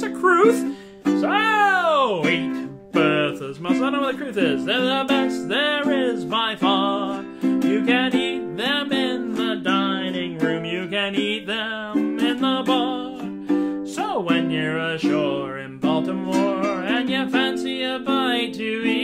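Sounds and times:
man singing: 0.0 - 19.0
strummed ukulele: 0.0 - 19.0.

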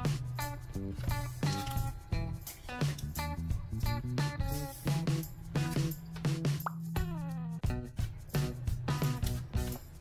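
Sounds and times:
light plucked background music: 0.0 - 10.0.

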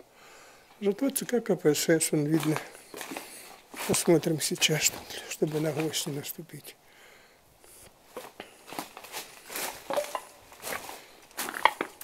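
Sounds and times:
footsteps crunching over rubble: 1.0 - 6.3, 8.0 - 12.0.

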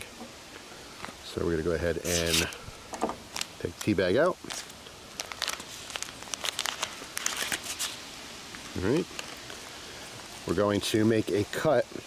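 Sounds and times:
paper wrapper tearing and crinkling: 2.0 - 2.6, 3.3 - 9.8.

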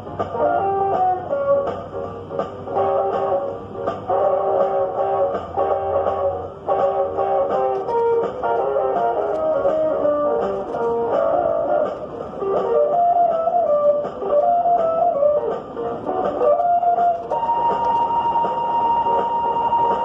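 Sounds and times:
picked guitar melody: 0.0 - 20.0
steady held tone: 0.0 - 20.0.

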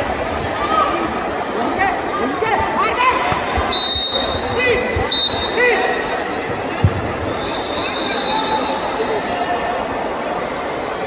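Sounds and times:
spectators chattering: 0.0 - 11.0
high whistle blasts: 3.7 - 5.9, 7.2 - 8.9.

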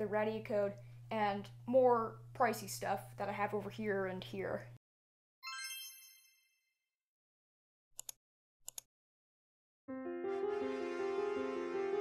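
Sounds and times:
bright chime ringing: 5.4 - 6.5.

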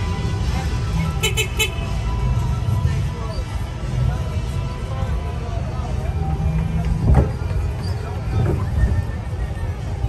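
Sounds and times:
background music: 0.0 - 6.8
high vehicle horn beeps: 1.1 - 2.3.

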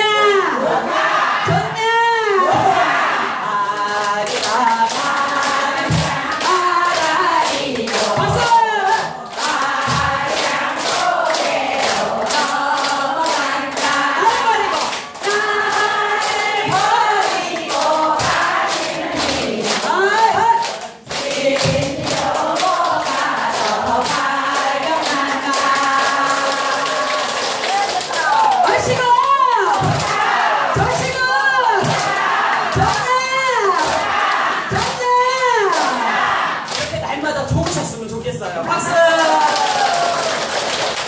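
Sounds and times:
elderly people singing: 0.0 - 36.9
hands clapping rhythmically: 3.6 - 38.0, 39.1 - 41.0.

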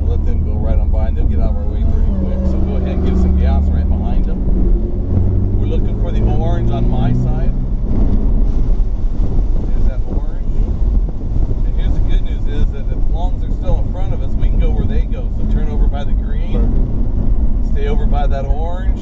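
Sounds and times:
car engine accelerating: 0.0 - 19.0.

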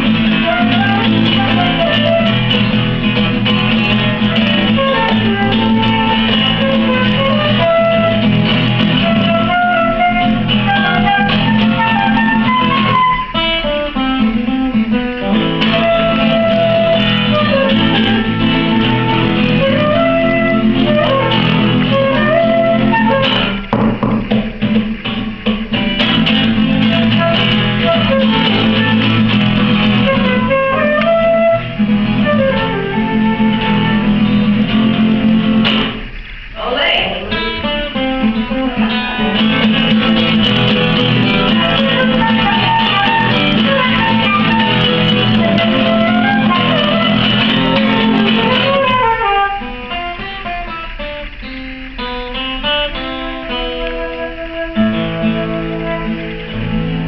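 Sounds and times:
flute melody: 0.0 - 23.7, 26.0 - 36.1, 37.5 - 51.3, 52.6 - 57.0
acoustic guitar strumming: 0.0 - 57.0.

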